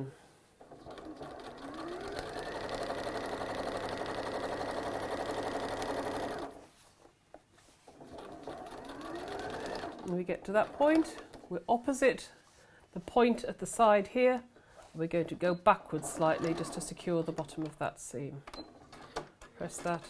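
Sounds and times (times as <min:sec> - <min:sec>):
electric sewing machine stitching: 0:00.6 - 0:06.6, 0:08.0 - 0:11.2, 0:16.0 - 0:17.0.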